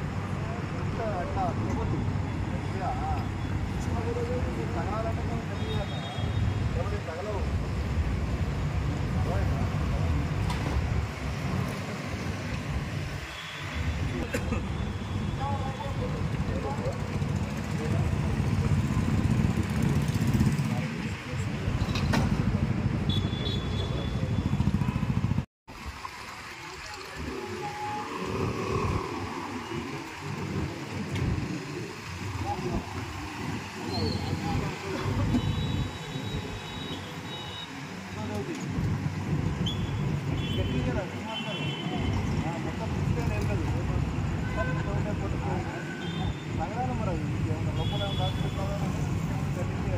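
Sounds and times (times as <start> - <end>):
people talking: 0.4 - 7.5, 14.2 - 19.0, 26.5 - 36.4, 38.0 - 38.8, 40.4 - 49.9
passing motorcycle engines: 15.4 - 25.4, 26.2 - 36.6.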